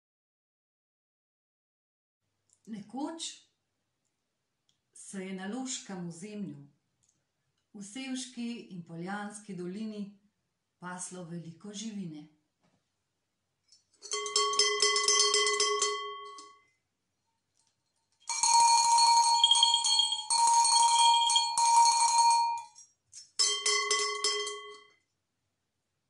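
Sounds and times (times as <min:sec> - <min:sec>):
large cowbell low clanking: 0:14.0 - 0:16.6, 0:18.3 - 0:22.8, 0:23.4 - 0:24.9
small cowbell high clanking: 0:14.0 - 0:16.7, 0:18.2 - 0:25.0.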